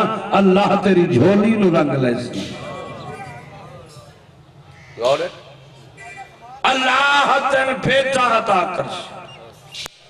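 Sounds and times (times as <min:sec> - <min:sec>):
preacher's voice echoing: 0:00.0 - 0:04.0, 0:06.0 - 0:09.2
faint quavering voices: 0:01.3 - 0:07.2.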